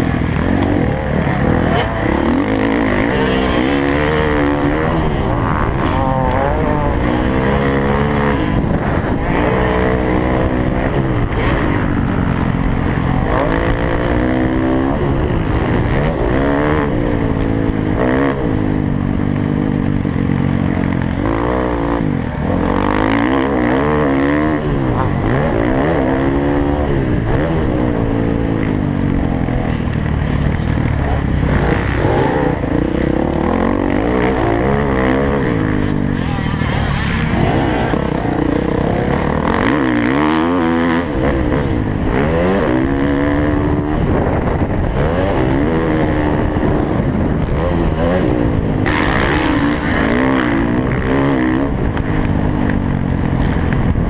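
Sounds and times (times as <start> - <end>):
dirt bike engine revving: 0.0 - 54.0
wind and track noise: 0.0 - 54.0.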